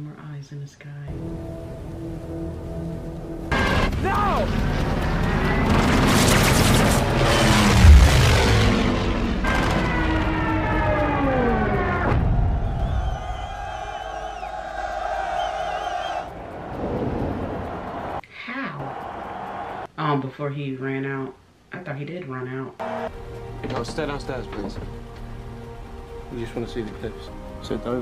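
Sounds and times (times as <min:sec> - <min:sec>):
dramatic film music: 0:01.1 - 0:18.2, 0:22.8 - 0:28.0
heavy boom: 0:03.5 - 0:13.9.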